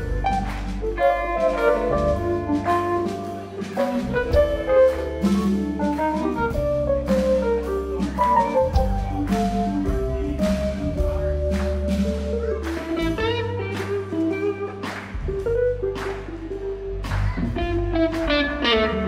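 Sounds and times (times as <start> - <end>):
drum kit with cymbals: 0.0 - 18.9
electric bass: 0.0 - 19.0
keyboard chords: 0.0 - 19.0.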